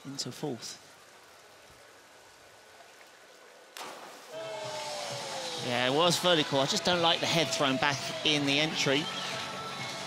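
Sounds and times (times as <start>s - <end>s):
faint background hiss: 0.0s - 10.0s
diver splashing into pool: 3.8s - 5.6s.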